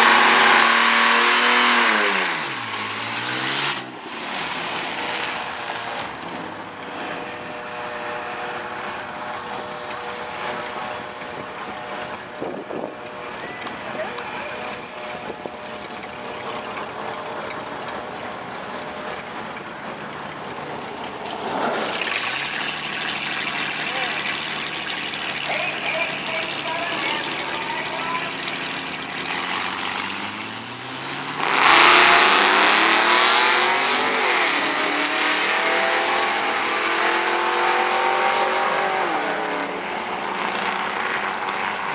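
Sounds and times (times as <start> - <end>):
car engines idling: 0.0 - 41.9
car engines revving: 0.0 - 41.9
cars accelerating at full throttle: 0.0 - 41.9.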